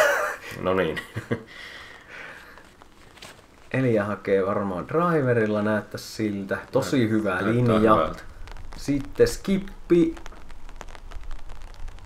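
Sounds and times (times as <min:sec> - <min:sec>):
raindrops ticking: 0:00.0 - 0:12.0
steady low rumble: 0:03.5 - 0:12.0.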